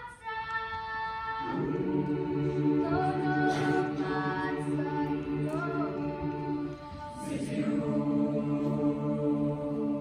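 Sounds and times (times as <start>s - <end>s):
choir singing held chord: 1.4s - 10.0s.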